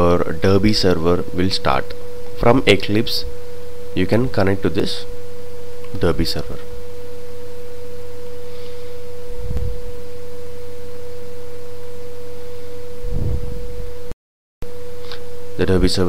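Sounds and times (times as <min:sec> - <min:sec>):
low electrical hum: 0:00.0 - 0:16.0
steady interference whine: 0:00.0 - 0:16.0.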